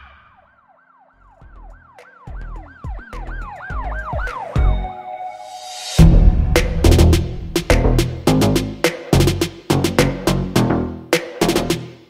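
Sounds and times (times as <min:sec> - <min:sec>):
siren sound effect: 0:00.0 - 0:06.8
deep bass hits: 0:06.0 - 0:10.3.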